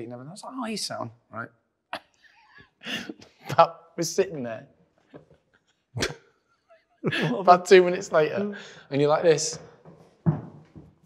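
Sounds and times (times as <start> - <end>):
man laughing: 7.0 - 7.6.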